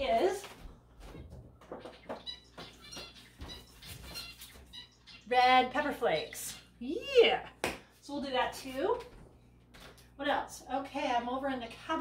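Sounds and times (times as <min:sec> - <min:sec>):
pet bird chirping: 0:01.6 - 0:07.2.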